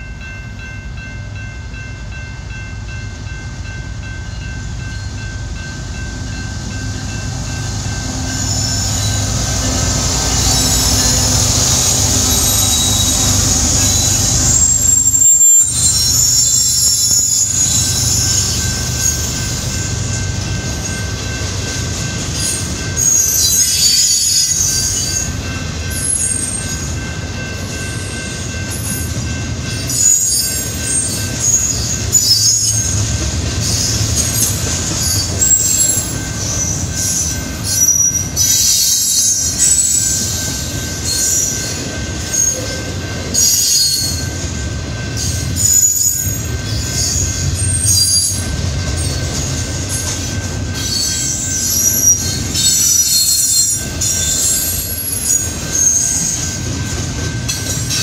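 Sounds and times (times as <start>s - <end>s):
freight train rumbling past: 0.0s - 58.0s
wheel squeals: 8.3s - 19.5s, 22.4s - 25.2s, 29.8s - 42.8s, 45.2s - 58.0s.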